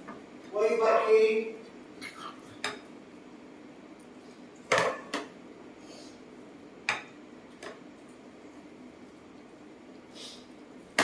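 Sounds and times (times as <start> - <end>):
dishware knocking on table: 4.7 - 5.3.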